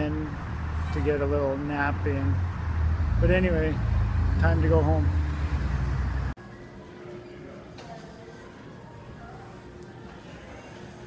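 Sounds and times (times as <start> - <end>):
traffic rumble: 0.0 - 6.4.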